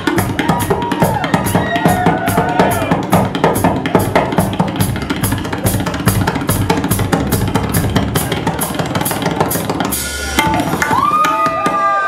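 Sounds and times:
drum solo: 0.0s - 12.0s.

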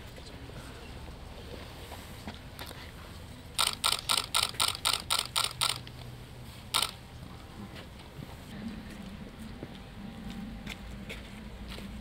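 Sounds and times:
camera shutter clicking: 3.6s - 5.9s, 6.7s - 7.0s.

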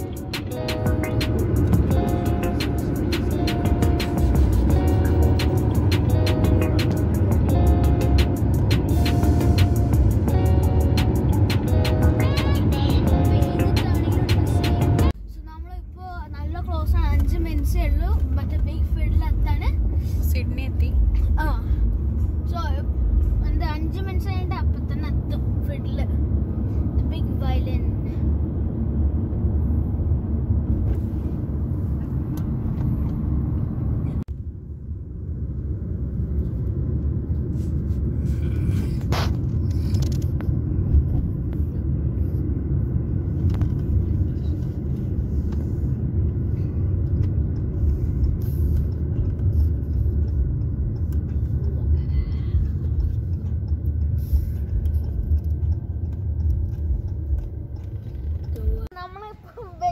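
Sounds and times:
car engine and road rumble: 0.0s - 59.9s.

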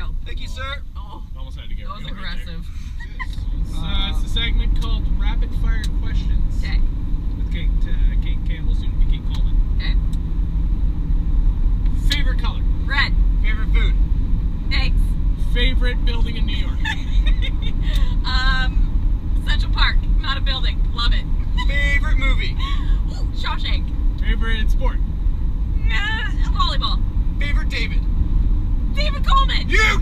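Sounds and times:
voices: 0.0s - 6.8s, 14.7s - 18.8s, 25.8s - 28.0s, 29.0s - 30.0s
truck engine and tyres rumbling: 0.0s - 30.0s.

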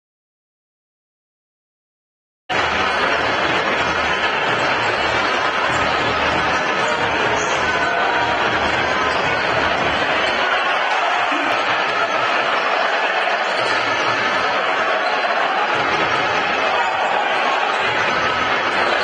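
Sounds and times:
arena crowd din: 2.5s - 19.0s.

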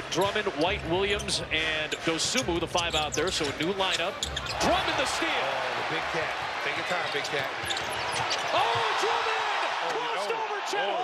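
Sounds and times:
sneakers squeaking on court: 0.0s - 5.0s, 6.8s - 9.0s.

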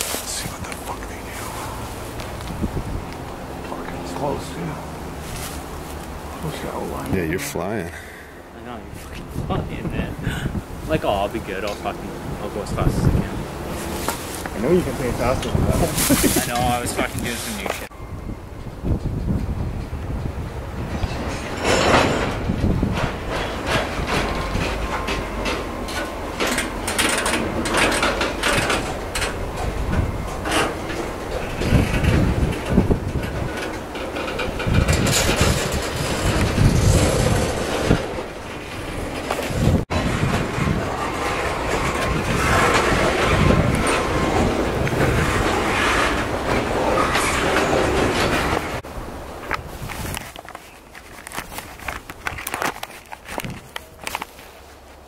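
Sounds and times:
freight train rolling past: 1.3s - 49.4s
steel wheels clattering on rails: 9.8s - 48.8s.

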